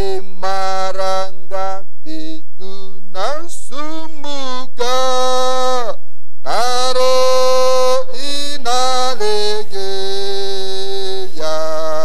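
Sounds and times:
person singing a hymn: 0:00.0 - 0:12.0.

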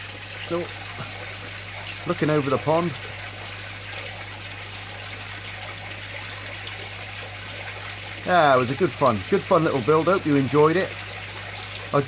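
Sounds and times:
pond water trickling: 0:00.0 - 0:12.0.

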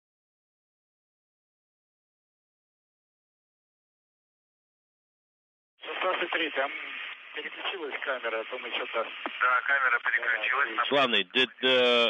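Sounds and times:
person talking over radio: 0:05.8 - 0:12.0.

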